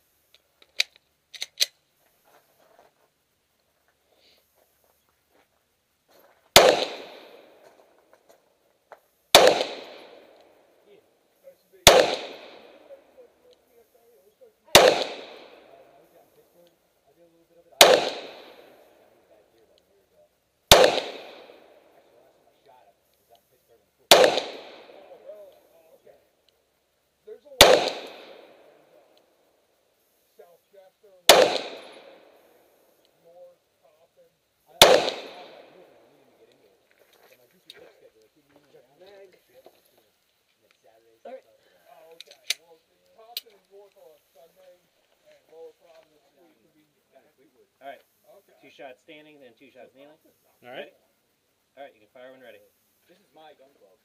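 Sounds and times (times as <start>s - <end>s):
pistol shots: 6.5s - 7.7s, 9.3s - 10.5s, 11.8s - 13.0s, 14.7s - 15.8s, 17.8s - 19.1s, 20.7s - 22.0s, 24.1s - 25.3s, 27.6s - 29.1s, 31.3s - 32.4s, 34.8s - 36.1s.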